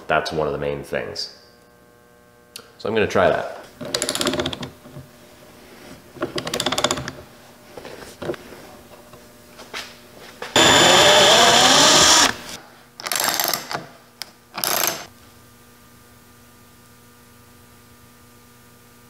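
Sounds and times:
electric drill whirring: 10.6s - 13.7s, 14.6s - 15.1s.

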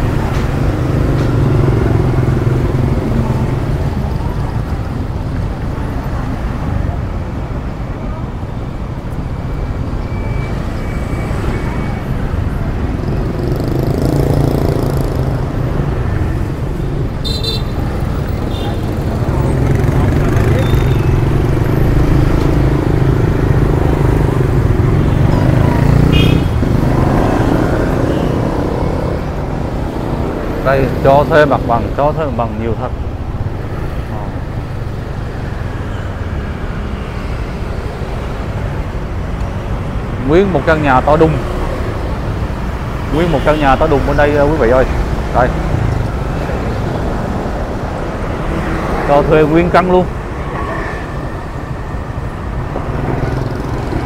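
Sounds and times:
motorbikes and cars passing: 0.0s - 54.0s
horn toots: 26.0s - 26.8s.

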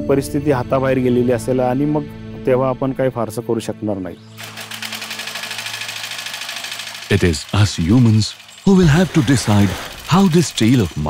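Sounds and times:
small boat engine idling: 4.4s - 11.0s.

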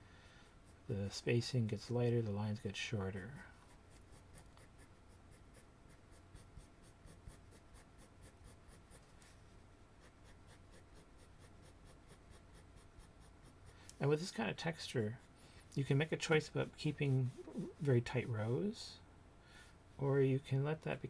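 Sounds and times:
pencil scratching on paper: 3.4s - 9.4s, 10.0s - 18.7s.

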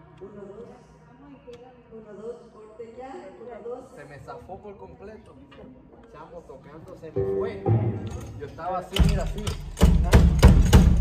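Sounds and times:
worship singing and music: 0.0s - 9.6s
heavy drum hits: 7.6s - 8.4s.

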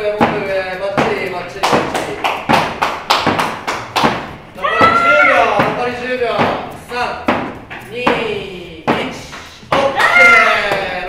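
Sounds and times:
battle ropes slapping floor: 0.0s - 11.0s.

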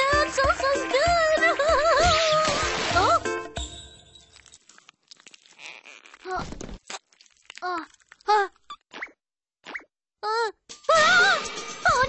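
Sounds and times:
children's music: 0.0s - 4.1s, 10.7s - 12.0s.

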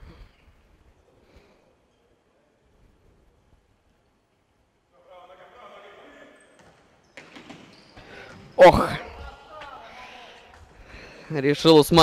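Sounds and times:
player calling out: 8.6s - 9.3s.

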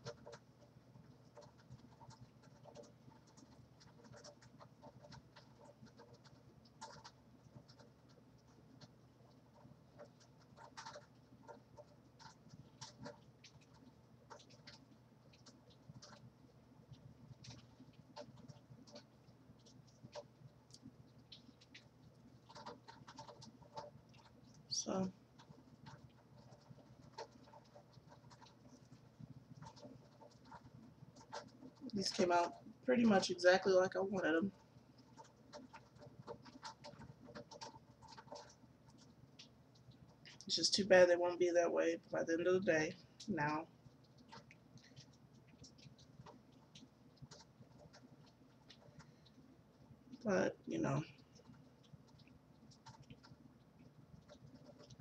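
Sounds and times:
fingers rustling through hair: 0.0s - 55.0s.

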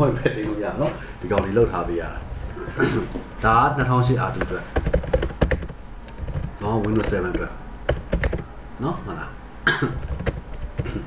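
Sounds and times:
computer keyboard typing: 4.3s - 8.4s, 10.0s - 11.0s.

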